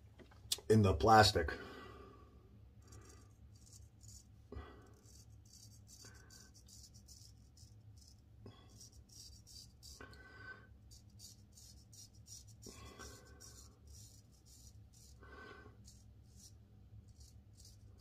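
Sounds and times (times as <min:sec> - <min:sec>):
razor scraping stubble: 0:10.9 - 0:18.0.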